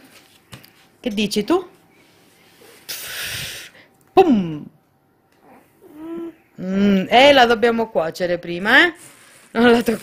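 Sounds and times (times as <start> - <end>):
breathy hiss of air: 2.5 - 3.9.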